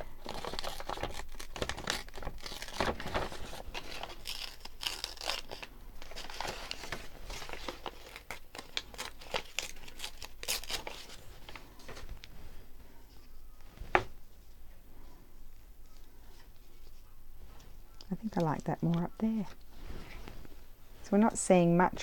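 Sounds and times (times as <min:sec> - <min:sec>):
paper rustling and crinkling: 0:00.0 - 0:21.1.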